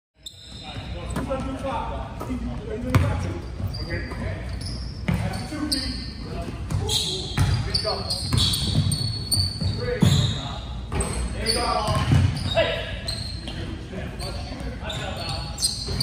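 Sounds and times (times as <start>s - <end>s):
sneakers squeaking: 0.2s - 16.0s
basketball bouncing on wooden floor: 2.9s - 3.2s, 11.9s - 12.4s.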